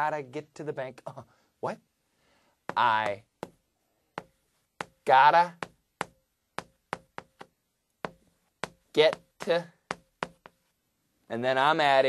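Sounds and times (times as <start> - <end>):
chalk tapping on chalkboard: 2.6 - 10.7.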